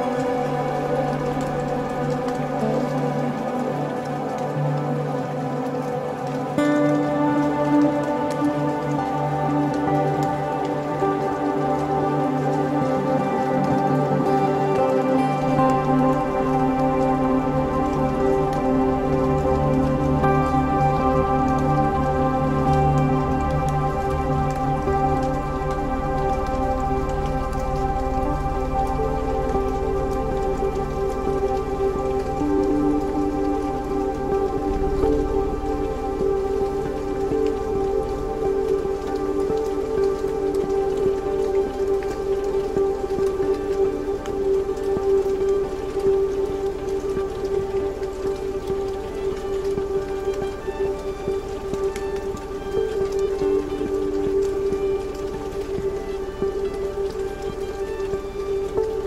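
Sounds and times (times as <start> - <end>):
ambient electronic drone music: 0.0 - 59.0
dense crackling texture: 0.0 - 59.0.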